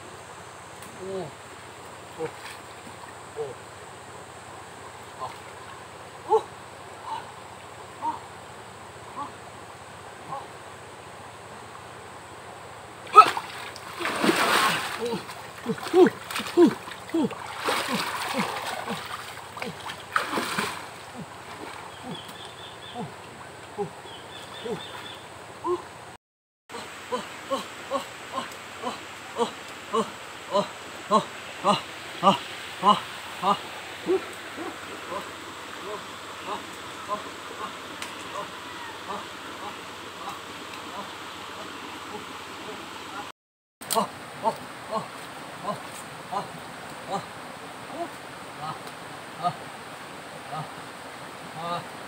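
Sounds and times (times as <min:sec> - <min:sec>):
stream rushing: 0:00.0 - 0:52.0
water splashing in a river: 0:04.9 - 0:06.4, 0:13.0 - 0:25.1, 0:26.8 - 0:52.0.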